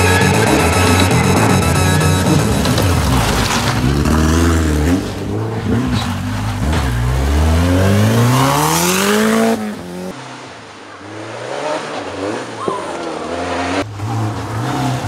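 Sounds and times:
rally car engine revving: 0.0s - 15.0s.

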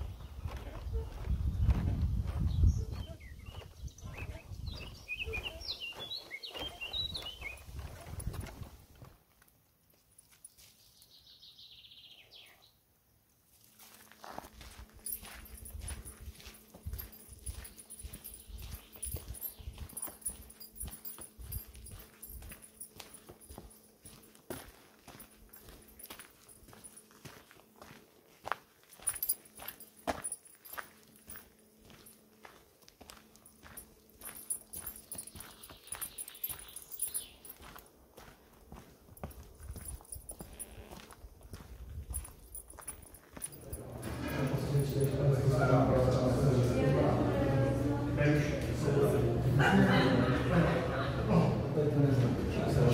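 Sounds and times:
footsteps on dirt path: 0.0s - 11.2s, 13.5s - 45.2s.

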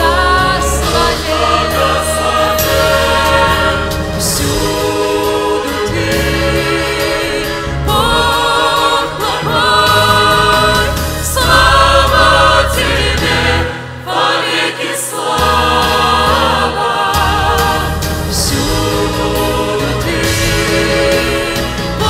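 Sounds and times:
low bass accompaniment: 0.0s - 13.7s
church choir singing: 0.0s - 22.0s.

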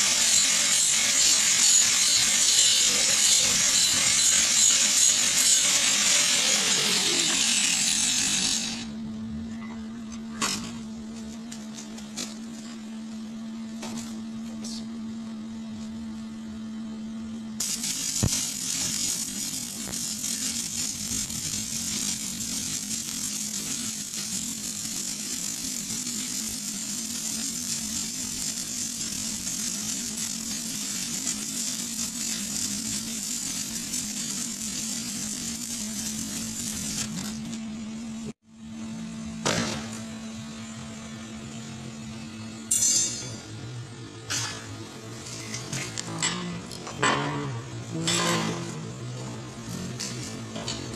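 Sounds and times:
welding arc crackling: 0.0s - 9.0s, 10.4s - 12.8s, 17.6s - 38.4s, 44.3s - 50.9s
electrical hum: 7.0s - 42.7s.

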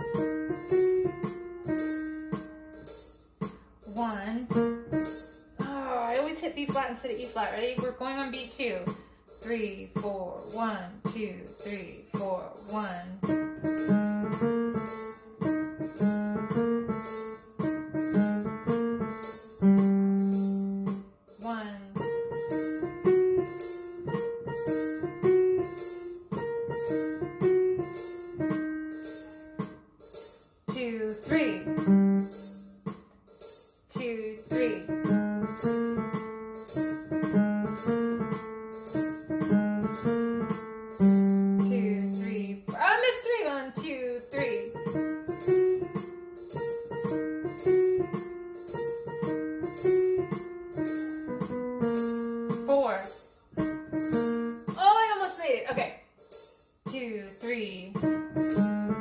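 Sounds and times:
digital piano bluesy melody: 0.0s - 59.0s
steady ticking beat: 0.0s - 59.0s.

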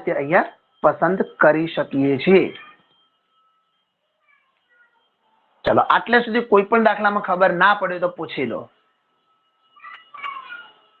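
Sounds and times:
short high-pitched cries: 9.8s - 10.9s.

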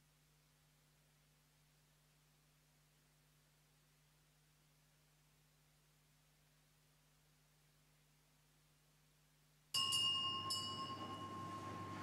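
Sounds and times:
small metal bell ringing: 9.8s - 12.0s.

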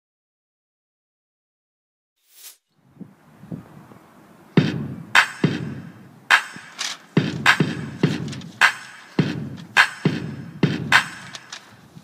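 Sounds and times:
loud drum hit: 4.6s - 5.9s, 7.2s - 8.4s.

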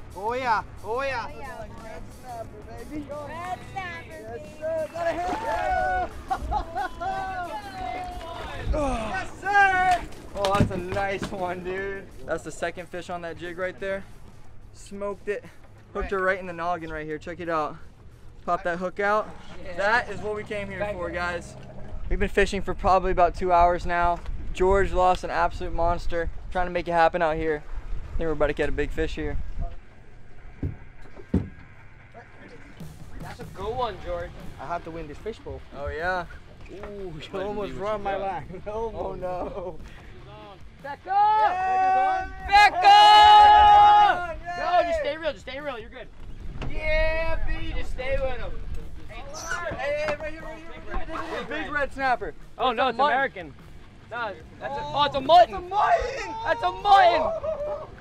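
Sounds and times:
background music: 0.0s - 24.0s, 31.6s - 46.0s, 47.6s - 58.0s
steady low rumble: 0.0s - 36.6s
excited voices calling out: 3.0s - 10.1s, 40.9s - 45.2s, 54.6s - 58.0s
dull thumps: 30.6s - 31.8s.

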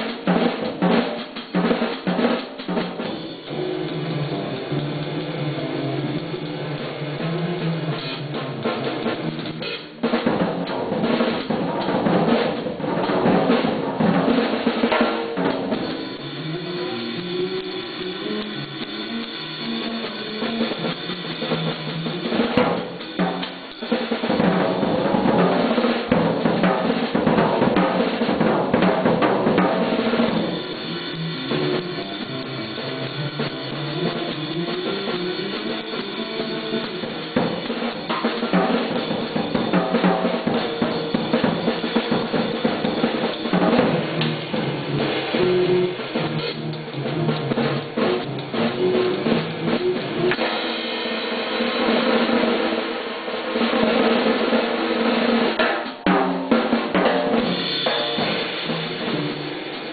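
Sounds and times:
jazz drum kit playing: 0.0s - 59.9s.

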